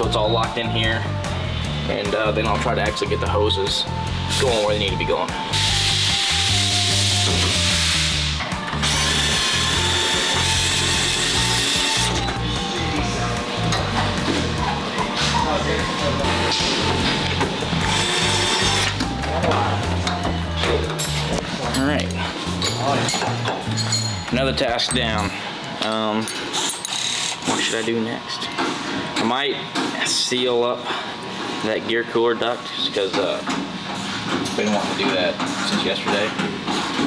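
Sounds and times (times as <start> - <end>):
background music with steady beat: 0.0 - 37.0
cordless screwdriver running: 8.8 - 12.2, 17.8 - 19.0.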